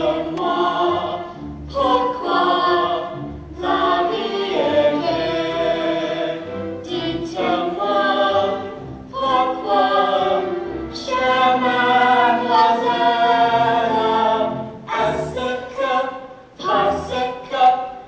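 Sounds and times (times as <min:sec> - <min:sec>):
man and children singing: 0:11.0 - 0:18.0.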